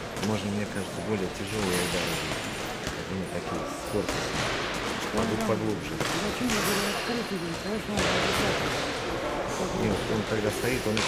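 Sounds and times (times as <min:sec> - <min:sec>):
voices echoing in gym: 0:00.0 - 0:11.0.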